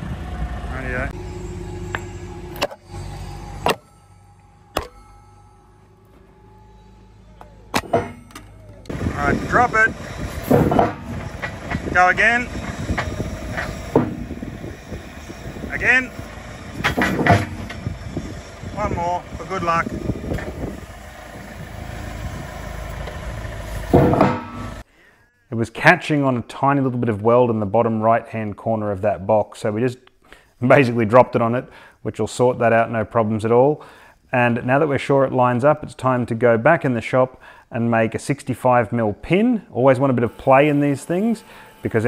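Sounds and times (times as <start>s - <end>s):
low engine hum: 0.0s - 24.8s
sharp metal clunk: 4.7s - 5.1s, 7.7s - 8.8s, 10.4s - 11.9s, 13.0s - 14.3s, 16.8s - 17.8s, 23.9s - 24.8s
steel on steel clanks: 7.7s - 17.9s, 23.8s - 24.8s.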